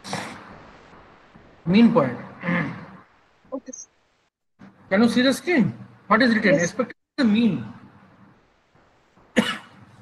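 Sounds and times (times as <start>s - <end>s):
person coughing: 9.3s - 9.8s.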